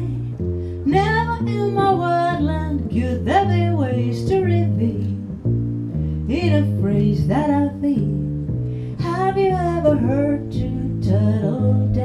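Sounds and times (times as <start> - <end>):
double bass walking: 0.0 - 12.0
woman singing jazz: 0.0 - 12.0.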